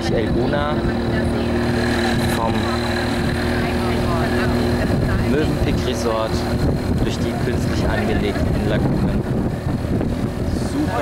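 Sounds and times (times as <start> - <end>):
motorboat engine droning: 0.0 - 11.0.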